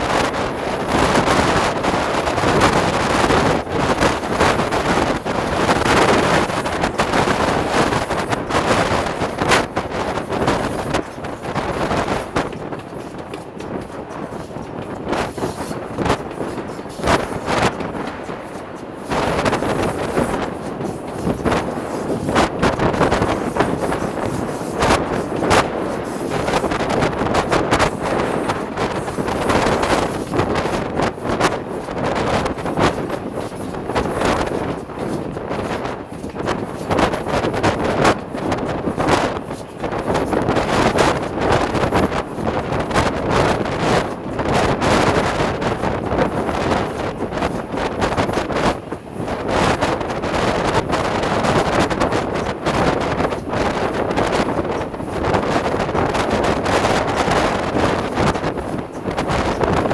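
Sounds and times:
steam locomotive running: 0.0 - 59.9
wind buffeting microphone: 0.0 - 59.9.

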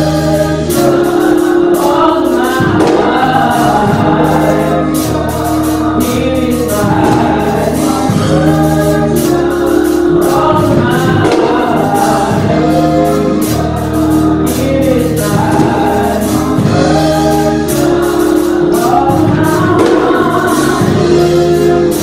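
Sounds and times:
live band playing: 0.0 - 22.0
women singing gospel: 0.0 - 22.0.

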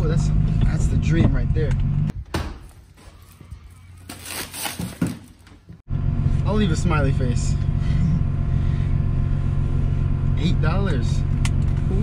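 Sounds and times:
plastic bags rustling: 2.6 - 5.7.

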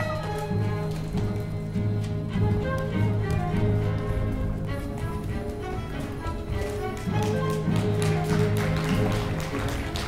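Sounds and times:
footsteps on wooden stage: 0.0 - 10.0
orchestra playing low notes: 0.0 - 10.0.

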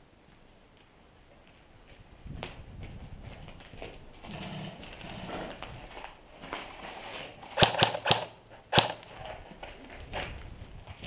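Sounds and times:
loud sharp cracks: 7.5 - 9.1.

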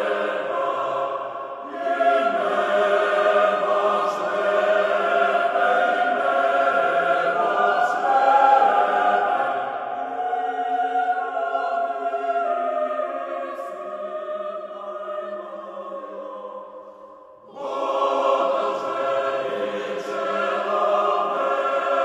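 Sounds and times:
choir singing a cappella: 0.0 - 22.0.

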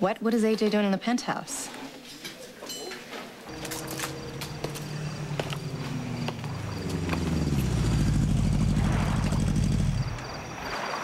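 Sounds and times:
vehicle engine winding down: 3.5 - 10.4.

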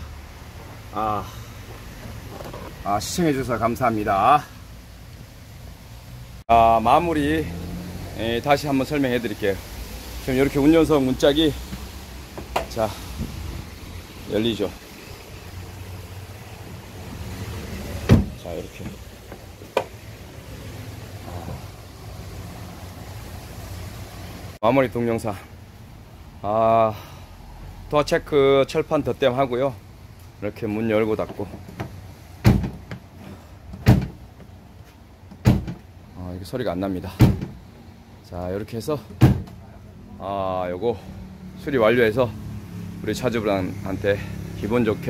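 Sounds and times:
car door opening: 1.6 - 2.9, 17.9 - 20.0, 35.3 - 35.9
car door clunking shut: 18.0 - 20.0, 31.4 - 33.0, 33.7 - 34.2, 35.3 - 35.9, 37.2 - 37.6, 39.0 - 39.6
faint low door thump: 18.1 - 19.0.

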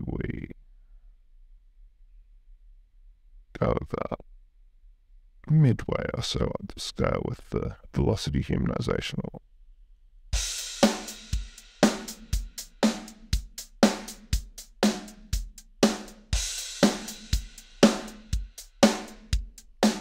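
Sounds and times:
hi-hat: 10.4 - 20.0
kick and snare drum beat: 10.4 - 20.0.

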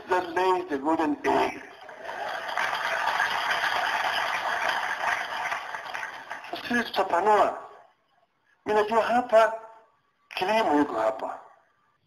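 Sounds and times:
crowd cheering and applauding: 1.8 - 6.6.

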